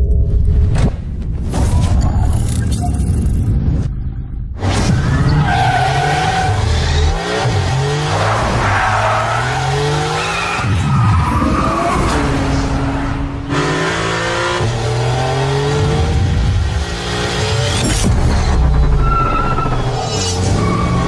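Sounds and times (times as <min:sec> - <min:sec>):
car engine revving hard: 0:11.4 - 0:17.8.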